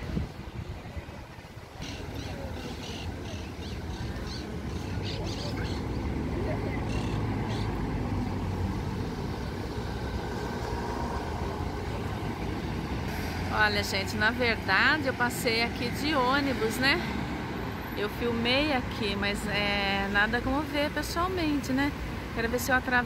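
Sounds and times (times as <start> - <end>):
street traffic: 0.0 - 23.0
bus engine humming: 1.9 - 23.0.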